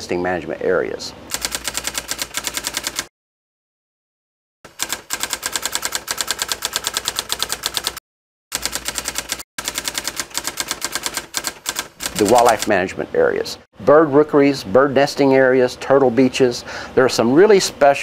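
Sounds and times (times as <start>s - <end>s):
typewriter key clicks: 9.8s - 12.7s.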